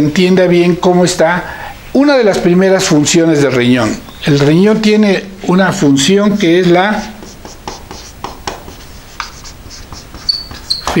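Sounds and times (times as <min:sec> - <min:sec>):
marker scratching on whiteboard: 0:05.4 - 0:11.0
marker tip squeaks: 0:07.0 - 0:11.0.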